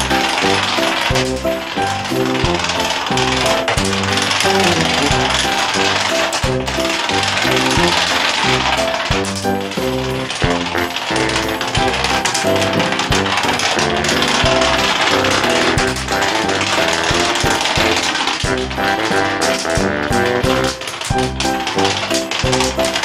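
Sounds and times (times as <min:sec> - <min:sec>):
dominoes toppling: 0:00.0 - 0:23.0
music playing: 0:00.0 - 0:23.0.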